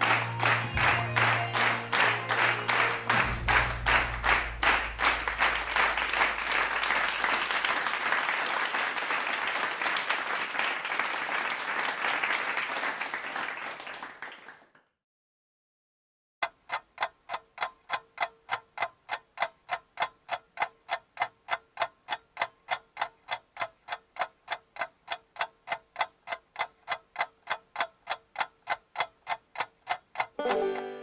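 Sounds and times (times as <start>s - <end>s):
clock-like ticking: 16.4s - 30.9s.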